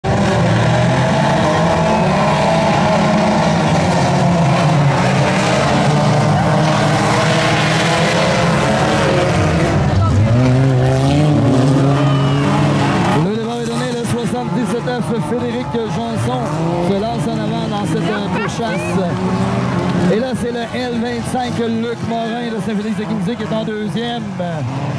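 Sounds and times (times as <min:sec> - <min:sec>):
racing car engines: 0:00.0 - 0:24.9.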